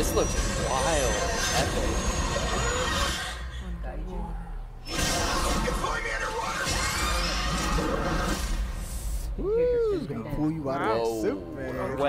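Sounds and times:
faint low hum: 0.0 - 7.7.

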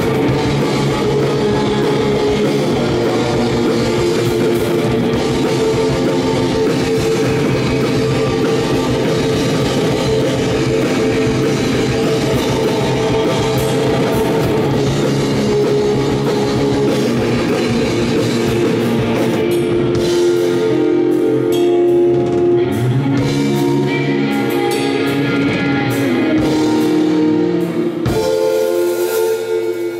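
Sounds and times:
drum kit: 0.0 - 29.9
electric guitars: 0.0 - 29.9.

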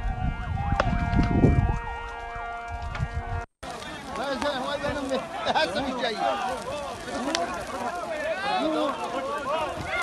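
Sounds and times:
vehicle siren: 0.0 - 3.5
sharp crack: 6.4 - 8.0.

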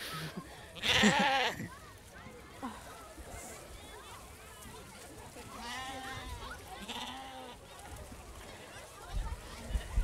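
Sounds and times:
murmur of a crowd: 0.0 - 10.0
sheep bleating: 0.8 - 1.7, 6.8 - 7.6.

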